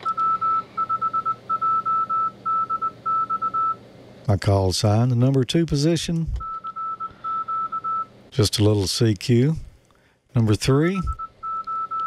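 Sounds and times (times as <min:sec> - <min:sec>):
morse code beeps: 0:00.0 - 0:03.8, 0:06.4 - 0:08.1, 0:11.1 - 0:12.0.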